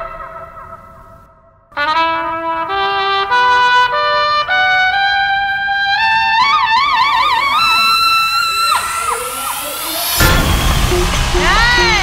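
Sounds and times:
trumpet playing: 1.7s - 12.0s.

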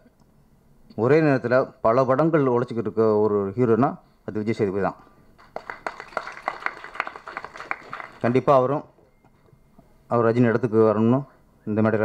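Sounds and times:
audience clapping: 5.4s - 8.6s.

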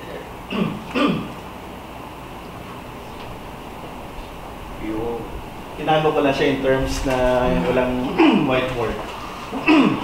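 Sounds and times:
man clearing his throat: 0.5s - 1.4s, 8.0s - 8.6s, 9.5s - 10.0s.

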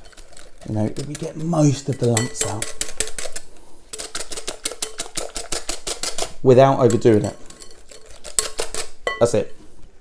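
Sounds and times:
whisk clicking against glass bowl: 1.9s - 3.3s.

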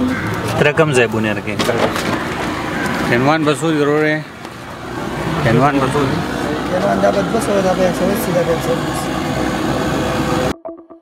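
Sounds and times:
loud steady outdoor noise: 0.0s - 10.5s.

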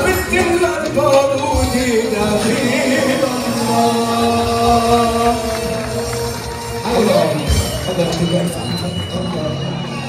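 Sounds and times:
man singing long held note: 1.2s - 7.0s.

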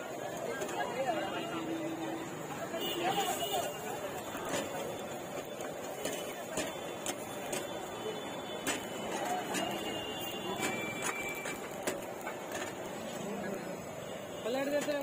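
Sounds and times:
faint crowd chatter: 0.0s - 15.0s
steady background noise: 0.0s - 15.0s.

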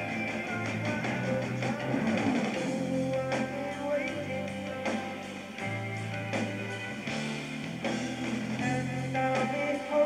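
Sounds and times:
live rock band: 0.0s - 10.0s
drum hit: 1.6s - 2.8s.

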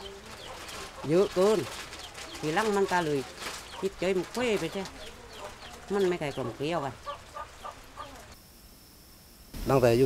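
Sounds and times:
chickens clucking: 0.0s - 8.4s
faint high whine: 7.8s - 10.0s.

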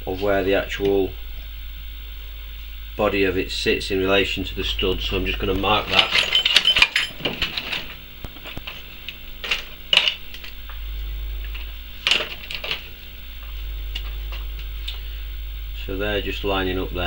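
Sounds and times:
low electrical hum: 0.0s - 17.0s
metal parts clicking on workbench: 5.6s - 8.8s.

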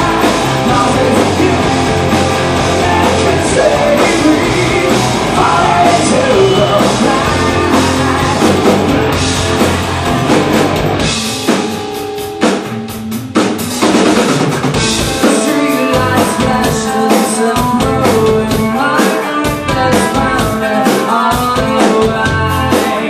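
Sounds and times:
live rock band playing: 0.0s - 23.0s.

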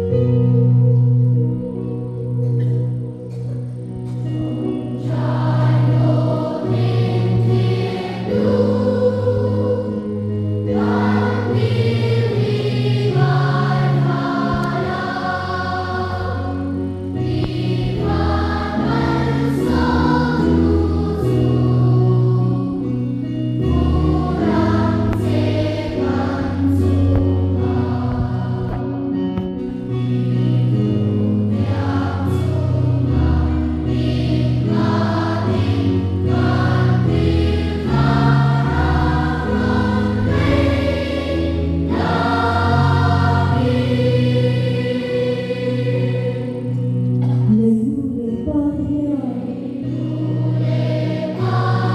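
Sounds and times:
children's choir singing a hymn: 0.0s - 51.9s
sustained keyboard accompaniment: 0.0s - 51.9s.

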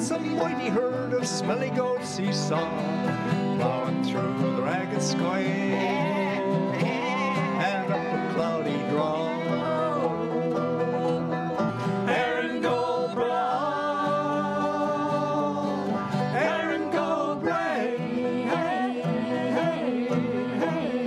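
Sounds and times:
acoustic folk band playing: 0.0s - 21.0s
person singing: 0.0s - 21.0s.

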